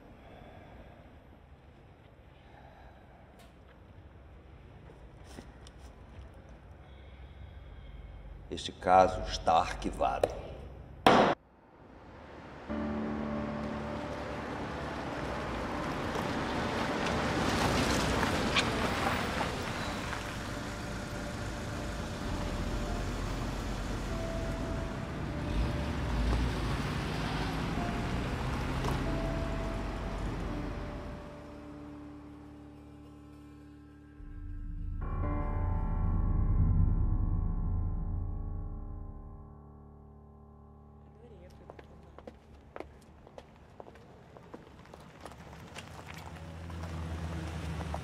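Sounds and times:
sharp knock: 11.1 - 11.4
soft sustained music notes: 12.7 - 42.2.

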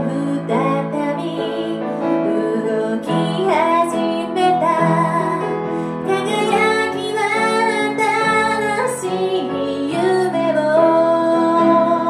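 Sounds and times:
grand piano: 0.0 - 12.0
woman singing: 0.0 - 12.0.

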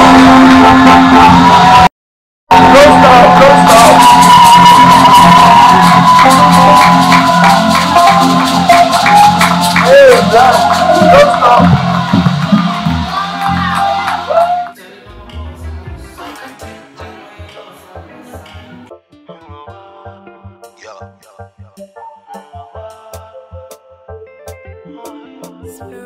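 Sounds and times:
crowd cheering and whooping: 0.0 - 1.9, 2.5 - 14.8
music with steady bass line: 0.0 - 1.9, 2.5 - 26.0
people clapping: 2.6 - 15.4.

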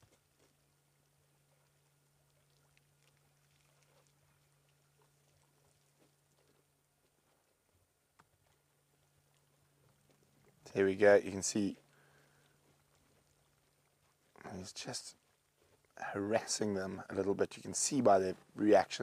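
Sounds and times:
faint low hum: 0.0 - 19.0.

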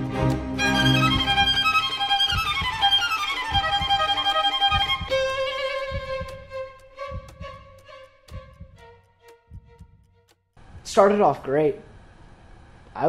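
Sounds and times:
sustained high violin notes: 0.0 - 10.3
soft low thuds: 0.8 - 10.1.

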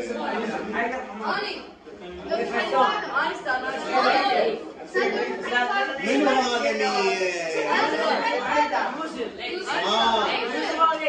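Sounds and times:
boys chattering: 0.0 - 11.0.

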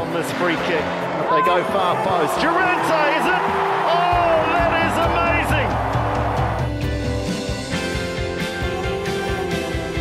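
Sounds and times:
stadium crowd cheering: 0.0 - 6.8
rock music: 0.0 - 10.0
excited commentator voice: 1.2 - 5.8.

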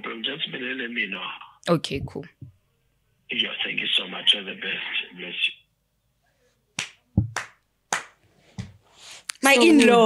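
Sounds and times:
sharp clicks or slaps: 6.8 - 8.7.

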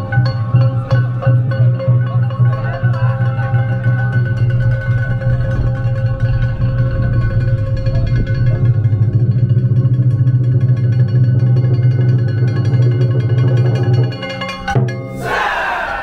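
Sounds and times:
loud festival music: 15.0 - 16.0.

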